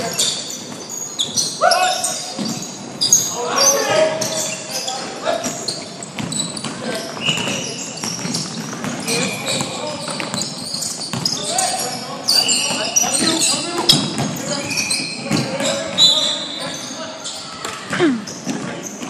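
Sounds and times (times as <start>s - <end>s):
sneakers squeaking on court: 0.0s - 19.0s
basketball bouncing: 6.0s - 6.8s, 11.1s - 11.4s.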